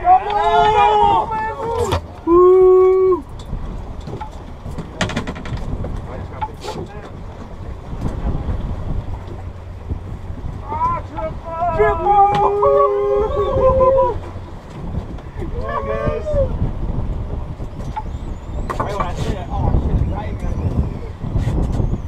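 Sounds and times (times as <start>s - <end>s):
men shouting: 0.0s - 3.2s, 10.6s - 14.3s, 15.4s - 16.6s
boat engine running: 0.0s - 22.0s
wind rumble: 0.0s - 22.0s.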